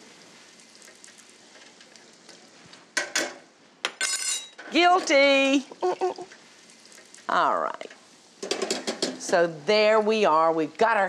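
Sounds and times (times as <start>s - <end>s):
oil sizzling in deep fryer: 0.0s - 3.8s, 4.6s - 11.0s.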